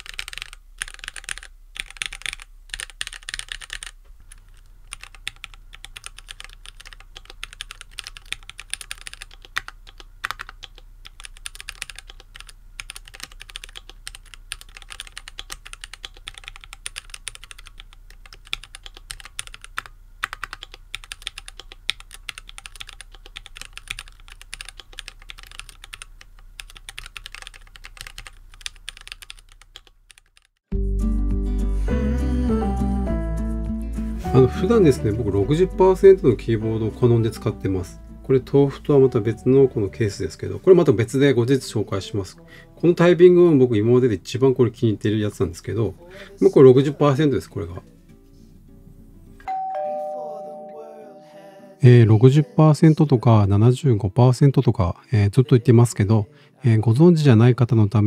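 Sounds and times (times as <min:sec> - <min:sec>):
fast mechanical keyboard typing: 0:00.0 - 0:30.6.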